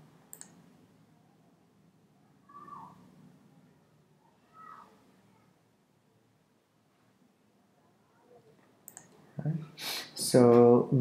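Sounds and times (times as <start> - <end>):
computer mouse click: 0.3 - 0.6, 8.8 - 9.2.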